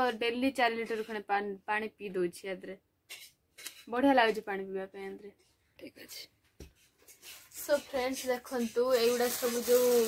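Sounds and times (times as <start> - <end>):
woman talking: 0.0 - 2.8, 3.9 - 6.3, 7.6 - 10.0
plastic bag rustling: 7.1 - 10.0.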